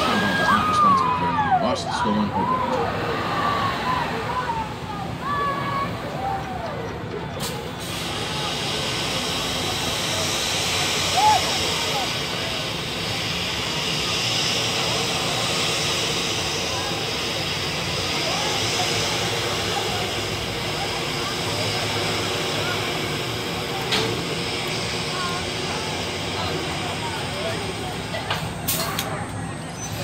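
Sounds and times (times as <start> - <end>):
faint indistinct voices: 0.0 - 30.0
steady hiss: 7.8 - 29.0.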